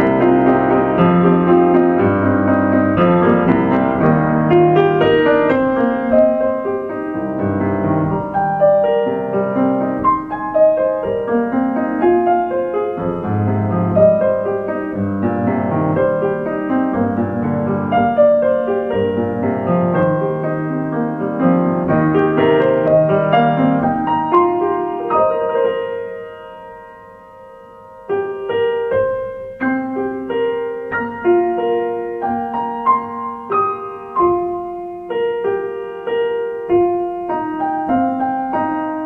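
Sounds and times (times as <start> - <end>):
solo piano: 0.0 - 39.0.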